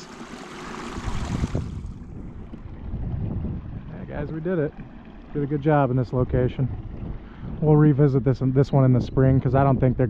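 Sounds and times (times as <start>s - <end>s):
shallow creek rushing: 0.0s - 2.1s
wind buffeting microphone: 0.6s - 10.0s.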